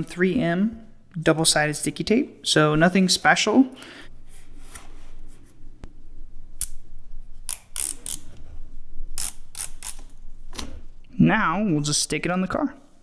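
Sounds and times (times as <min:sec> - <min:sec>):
tape liner peeling rips: 0:07.4 - 0:08.3, 0:09.2 - 0:10.1.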